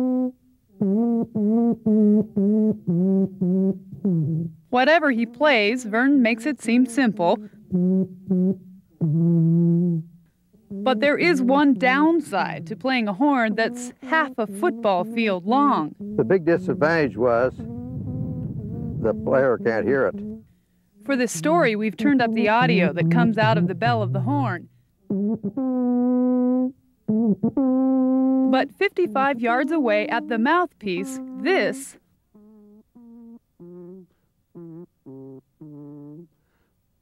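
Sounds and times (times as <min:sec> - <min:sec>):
alphorn notes: 0:00.0 - 0:36.4.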